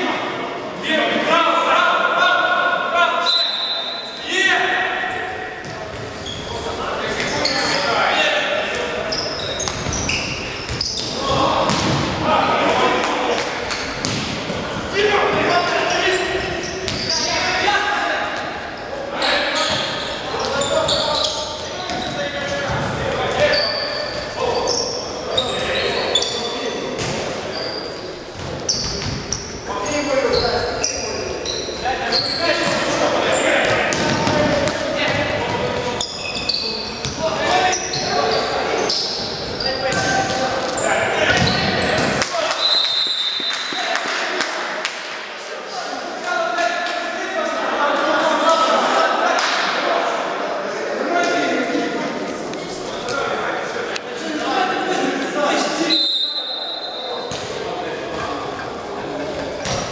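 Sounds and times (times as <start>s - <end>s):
ball bouncing on wooden floor: 13.4s - 14.3s.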